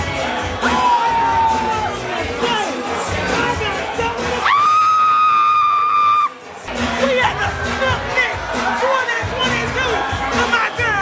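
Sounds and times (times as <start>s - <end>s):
party music: 0.0s - 11.0s.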